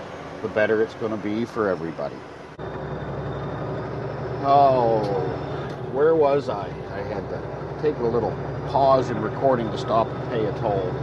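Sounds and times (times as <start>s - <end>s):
vehicle cabin road and engine rumble: 0.0s - 11.0s.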